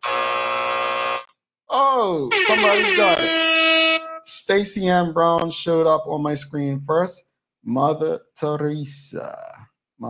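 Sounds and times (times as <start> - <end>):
game show buzzer: 0.0 - 1.3, 2.3 - 4.2
falling tone: 2.2 - 4.4.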